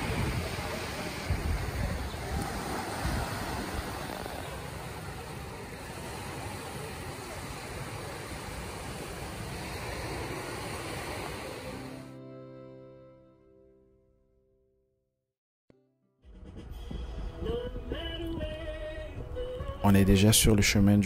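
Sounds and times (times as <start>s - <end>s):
wind buffeting microphone: 0.0s - 11.0s
small waves breaking on sand: 0.0s - 12.0s.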